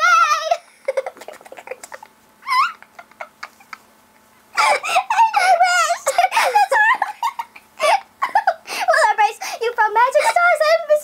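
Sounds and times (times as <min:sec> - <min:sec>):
women laughing: 0:00.6 - 0:04.0, 0:04.6 - 0:08.8.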